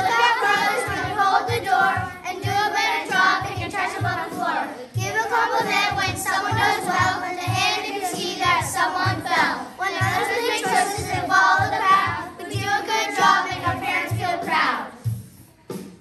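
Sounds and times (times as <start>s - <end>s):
backing beat with low thump: 0.0s - 16.0s
children rapping in unison: 0.0s - 16.0s.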